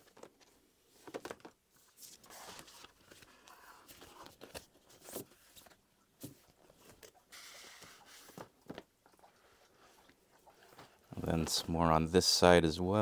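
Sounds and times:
paper prints rustling and tapping: 0.0 - 8.9
soft paper slide: 7.3 - 8.5.

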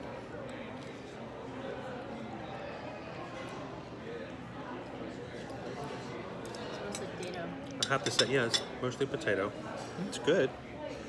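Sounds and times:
murmur of diners chatting: 0.0 - 11.0.

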